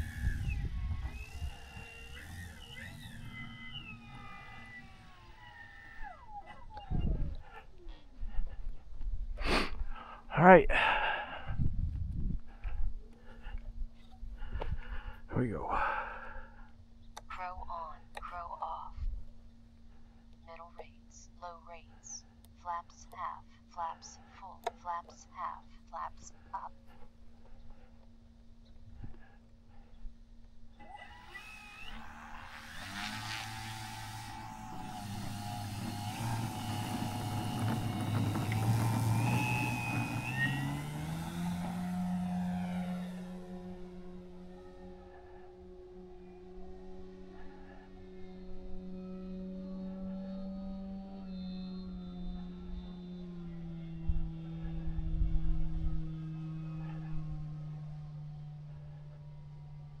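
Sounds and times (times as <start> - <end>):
model airplane engine and propeller: 0.0 - 60.0.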